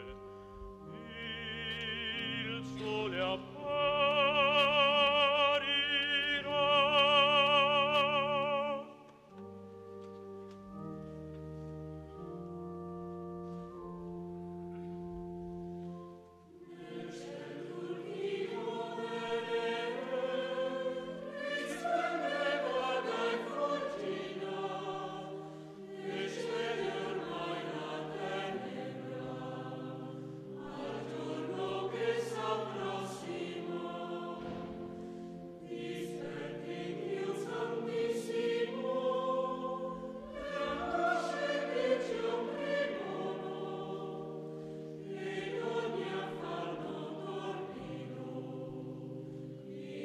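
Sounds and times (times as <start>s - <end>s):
choir singing: 0.0s - 9.8s, 15.7s - 50.0s
organ chords: 0.0s - 50.0s
choir breaths: 16.4s - 50.0s.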